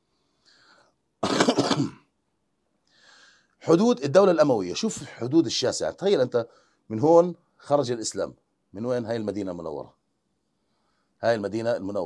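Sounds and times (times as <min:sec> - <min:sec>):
faint breath in: 0:00.0 - 0:01.0, 0:02.9 - 0:03.6, 0:06.5 - 0:06.9, 0:10.6 - 0:11.2
man clearing his throat: 0:01.2 - 0:02.1.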